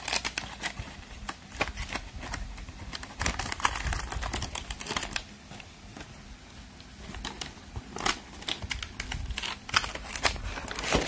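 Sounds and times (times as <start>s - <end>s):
cardboard and plastic packaging crinkling: 0.0s - 11.0s.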